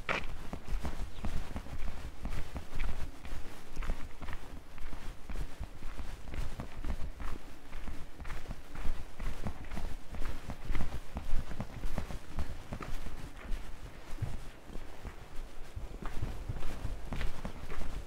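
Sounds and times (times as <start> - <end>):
footsteps on hard lane: 0.0 - 18.0.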